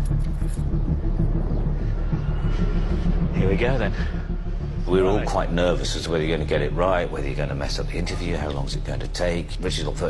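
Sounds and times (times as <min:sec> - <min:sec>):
low rumble: 0:00.0 - 0:08.0.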